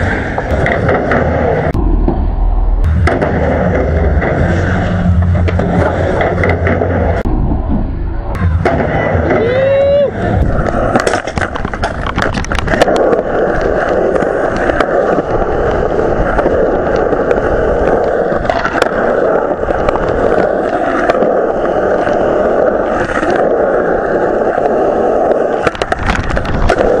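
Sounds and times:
skateboard wheels rolling on concrete: 0.0s - 27.0s.

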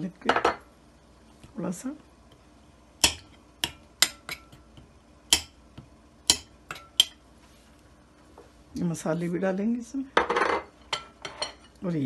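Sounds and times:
metal spoon clinking on glass bowl: 6.3s - 7.2s.

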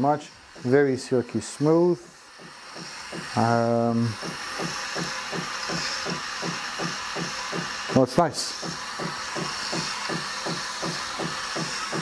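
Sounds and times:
espresso machine frothing milk: 0.0s - 12.0s.

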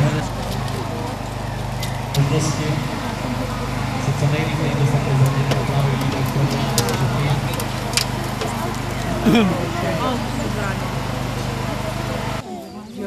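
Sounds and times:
engine humming: 0.0s - 13.0s
people talking in background: 0.0s - 13.0s.

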